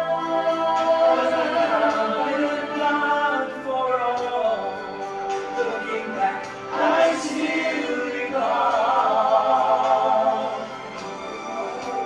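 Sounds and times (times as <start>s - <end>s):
choir singing: 0.0s - 12.0s
musical accompaniment: 0.0s - 12.0s.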